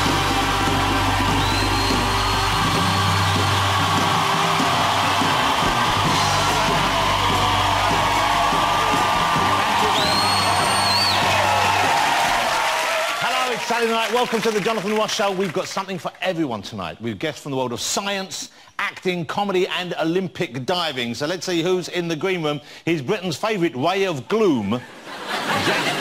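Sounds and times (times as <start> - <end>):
upbeat music with heavy bass beat: 0.0 - 12.2
audience cheering: 0.0 - 15.8
shrill whistles: 1.2 - 12.0.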